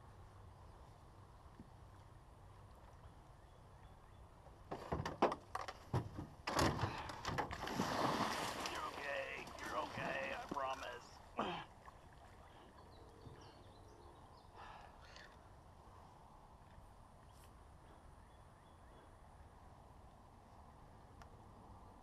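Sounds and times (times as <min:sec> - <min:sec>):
fish splashing in water: 0:07.6 - 0:11.0.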